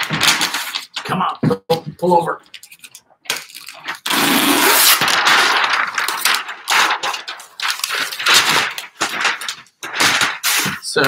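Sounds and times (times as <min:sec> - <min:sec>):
paper rustling and crackling: 0:00.0 - 0:01.2, 0:02.5 - 0:11.0.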